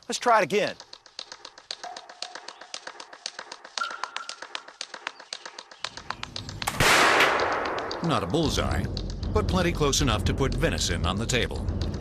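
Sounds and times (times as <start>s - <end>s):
quick even ticking: 0.0s - 12.0s
loud rifle shot: 6.7s - 7.8s.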